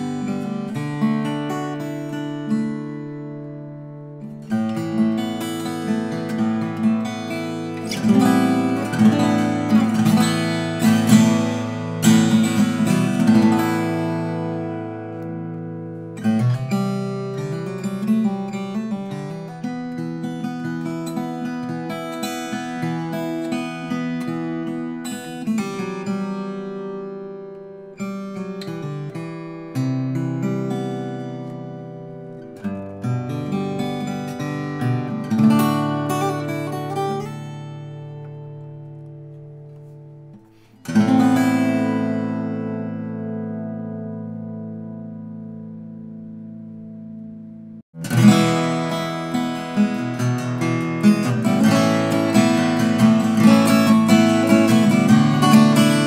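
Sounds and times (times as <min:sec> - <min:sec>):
acoustic guitar fingerpicked and strummed: 0:00.0 - 0:56.0.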